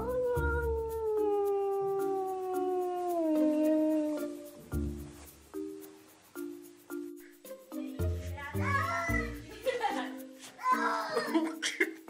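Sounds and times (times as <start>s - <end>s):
animal howl: 0.0s - 4.5s
plucked background music: 0.0s - 12.0s.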